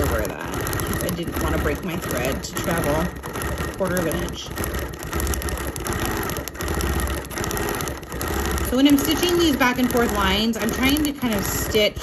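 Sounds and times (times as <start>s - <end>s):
quilting machine stitching: 0.0s - 12.0s.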